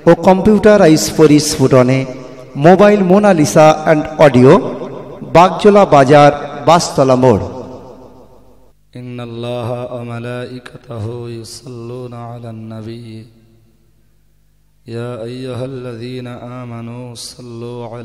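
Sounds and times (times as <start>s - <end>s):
man chanting religious recitation: 0.0s - 8.1s, 8.9s - 13.6s, 14.8s - 18.0s.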